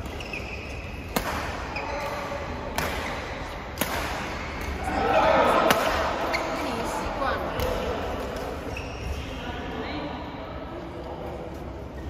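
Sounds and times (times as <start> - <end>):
shoes squeaking on court: 0.0 - 2.4, 6.2 - 7.0, 8.4 - 9.3
racket hitting shuttlecock: 0.0 - 4.9, 5.6 - 6.6.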